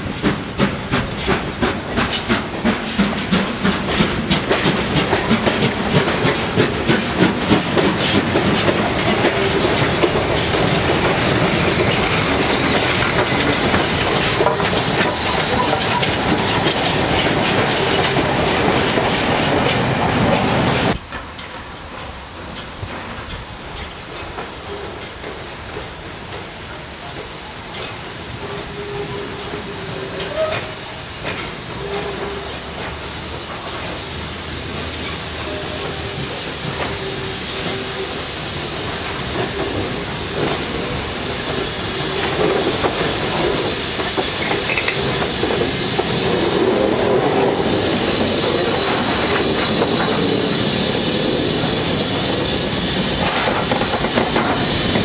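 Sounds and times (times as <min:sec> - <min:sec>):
steam hissing: 0:00.0 - 0:55.0
train wheels clicking over rail joints: 0:00.0 - 0:55.0.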